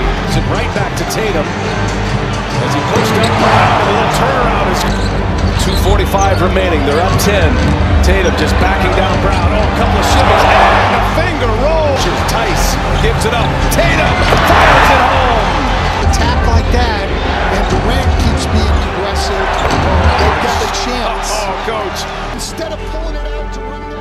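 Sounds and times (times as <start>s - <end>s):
background music: 0.0s - 24.0s
crowd noise: 0.0s - 24.0s
sneakers squeaking: 4.7s - 7.2s, 19.4s - 20.4s.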